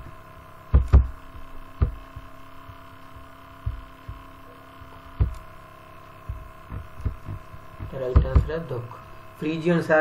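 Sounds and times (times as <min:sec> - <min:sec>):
soft low thumps: 0:00.0 - 0:04.5, 0:05.1 - 0:05.5, 0:06.2 - 0:08.8
electrical hum: 0:00.0 - 0:10.0.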